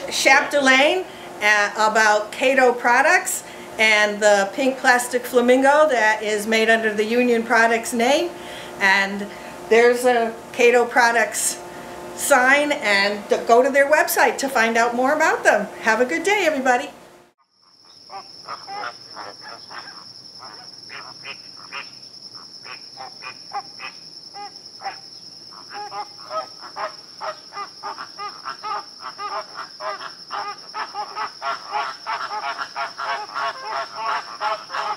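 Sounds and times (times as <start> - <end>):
high-pitched insect trill: 17.4 - 34.9
bird chirps: 17.6 - 34.9.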